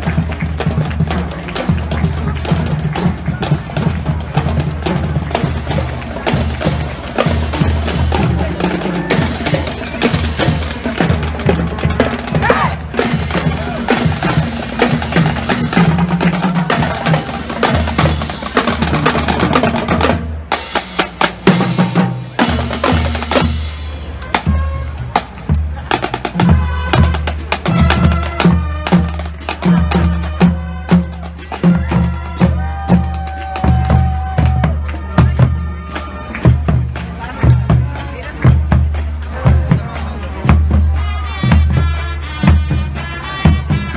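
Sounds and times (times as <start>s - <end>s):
snare drums: 0.0s - 43.9s
tenor drums: 0.0s - 43.9s.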